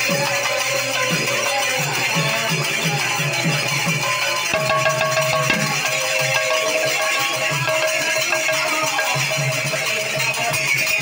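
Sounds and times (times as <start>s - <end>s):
small hand cymbals: 0.0s - 11.0s
barrel drums beaten by hand: 3.5s - 9.9s.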